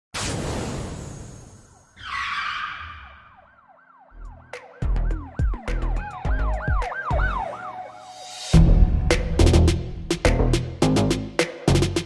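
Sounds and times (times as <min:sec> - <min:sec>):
siren-like wail: 0:01.8 - 0:08.6
heavy bass hits: 0:08.6 - 0:11.4.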